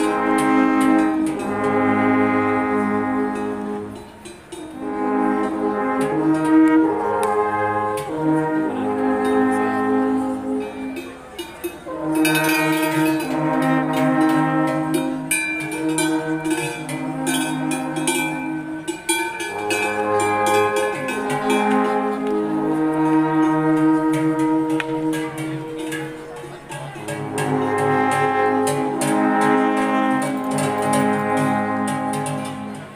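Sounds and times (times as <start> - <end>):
alphorn ensemble playing: 0.0 - 32.9.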